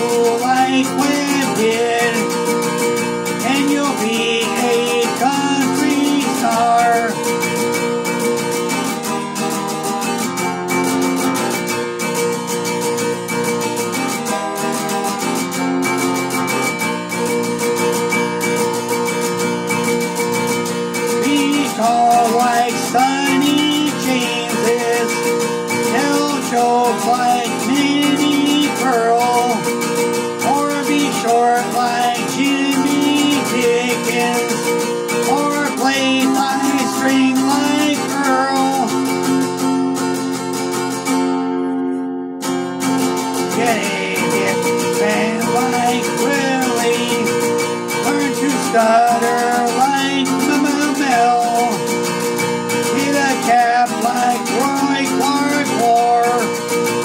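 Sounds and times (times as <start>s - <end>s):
acoustic guitar strummed: 0.0s - 57.0s.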